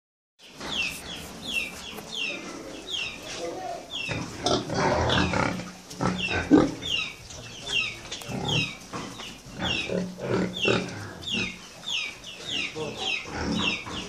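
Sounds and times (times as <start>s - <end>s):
pigs grunting: 2.3s - 11.6s, 12.5s - 14.0s.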